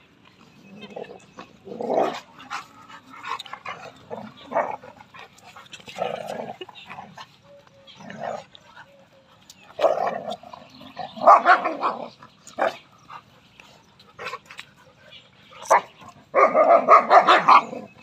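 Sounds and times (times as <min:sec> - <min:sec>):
dogs growling and barking: 0:00.0 - 0:18.0.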